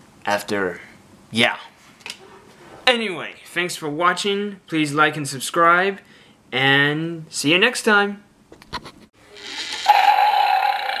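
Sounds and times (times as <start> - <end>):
animal roar: 9.3 - 11.0.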